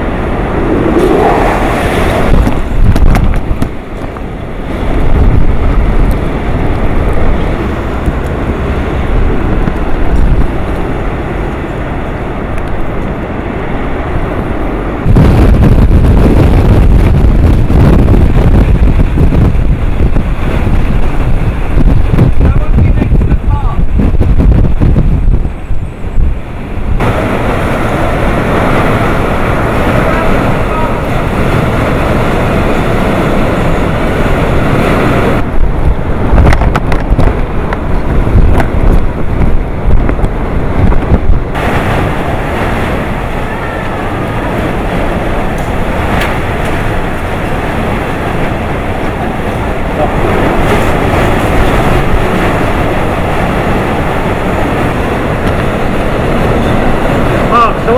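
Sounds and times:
driving rain: 0.0s - 57.9s
strong wind buffeting microphone: 0.0s - 57.9s.

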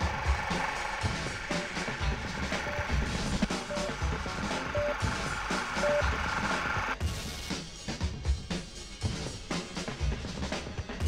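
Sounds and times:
music with hissing texture: 0.0s - 11.0s
short electronic beep: 2.6s - 5.2s, 5.8s - 6.1s.

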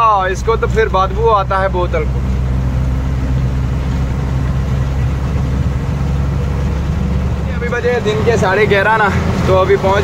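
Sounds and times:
truck engine humming: 0.0s - 10.0s.

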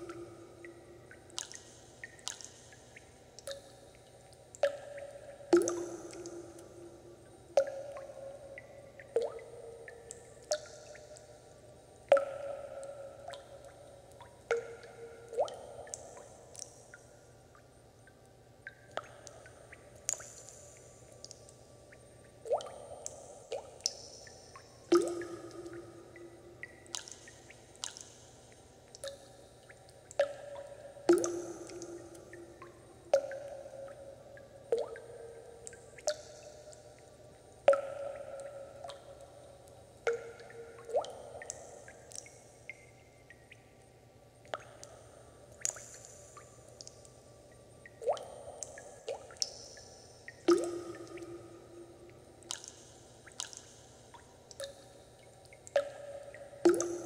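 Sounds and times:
water drops plinking into water: 0.0s - 57.0s.

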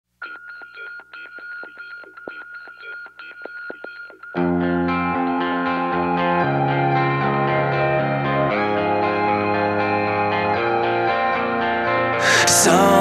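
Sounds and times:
tinny picked guitar: 0.2s - 13.0s
rock band with distorted guitars: 2.1s - 13.0s.

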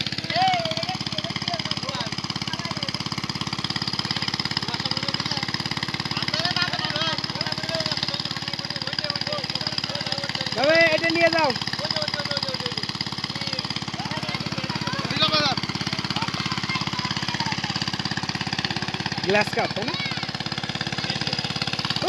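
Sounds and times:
small engine running: 0.0s - 22.0s
people talking: 0.3s - 3.0s, 6.1s - 12.8s, 13.4s - 17.8s.

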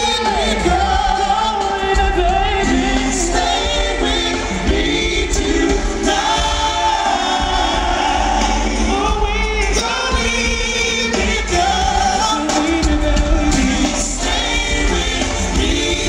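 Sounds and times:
heavy bass: 0.0s - 16.0s
keyboards: 0.0s - 16.0s
vocal group singing in harmony: 0.0s - 16.0s.

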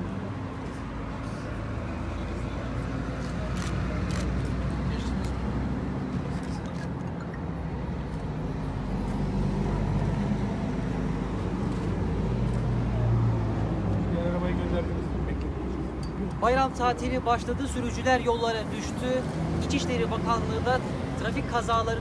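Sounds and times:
road traffic hum: 0.0s - 22.0s.

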